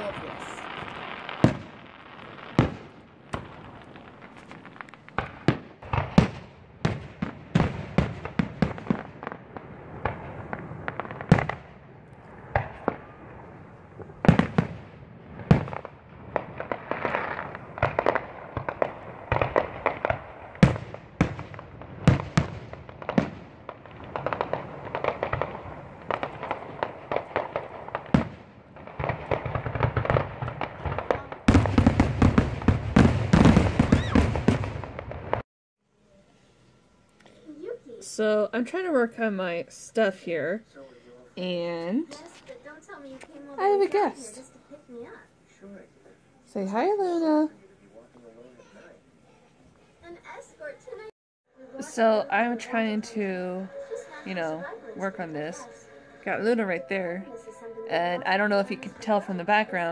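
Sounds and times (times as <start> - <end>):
fireworks shells bursting: 0.0 - 35.4.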